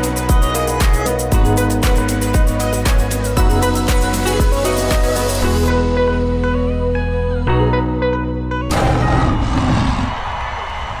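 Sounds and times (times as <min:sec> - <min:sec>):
sudden hit: 0:08.7 - 0:10.6.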